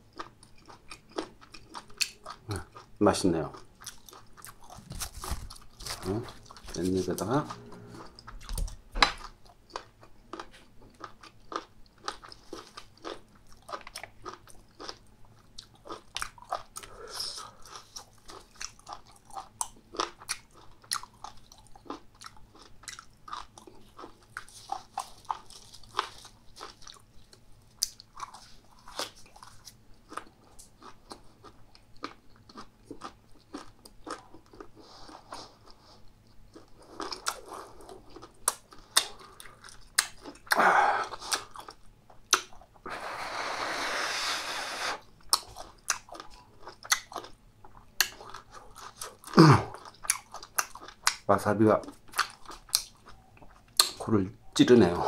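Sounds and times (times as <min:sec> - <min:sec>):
chewing and crunching: 0:00.0 - 0:42.8, 0:45.0 - 0:55.0
loud breathy burst: 0:42.9 - 0:45.0.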